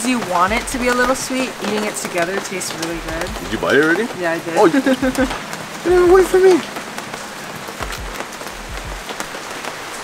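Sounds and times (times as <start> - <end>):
rain on awning and pavement: 0.0 - 10.0
sharp drips: 0.0 - 10.0.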